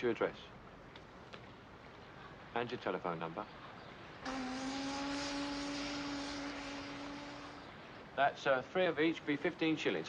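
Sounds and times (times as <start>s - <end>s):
ship's horn blast: 4.2s - 7.8s.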